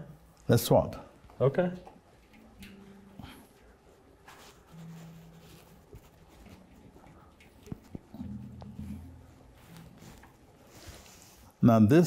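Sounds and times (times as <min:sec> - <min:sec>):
faint handling contact sounds: 0:01.8 - 0:11.7.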